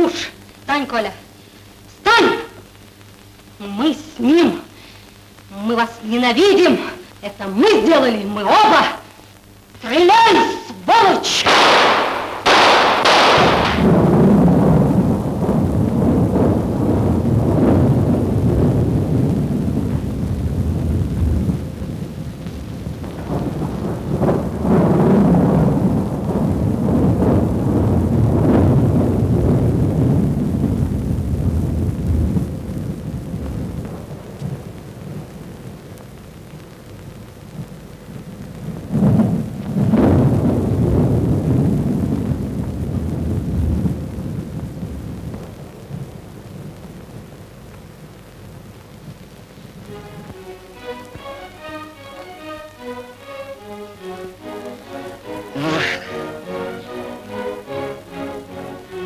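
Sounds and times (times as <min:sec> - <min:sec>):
steady rain: 0:00.0 - 0:59.0
rolling thunder: 0:11.4 - 0:52.2, 0:54.4 - 0:59.0.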